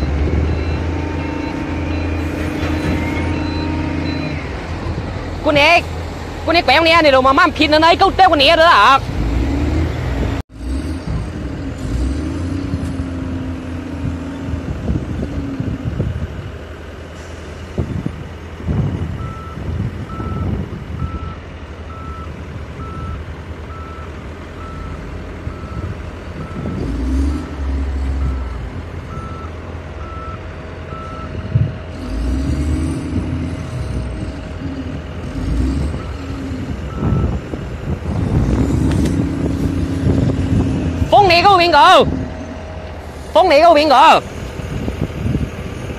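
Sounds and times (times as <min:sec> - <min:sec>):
reversing alarm beeping: 0:00.0 - 0:04.6, 0:19.2 - 0:31.6, 0:35.5 - 0:37.5
diesel engine and hydraulics running: 0:00.0 - 0:45.9.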